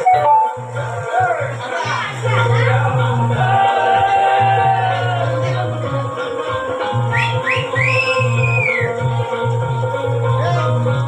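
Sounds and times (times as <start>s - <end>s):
high whistle-like glides: 7.1s - 9.0s.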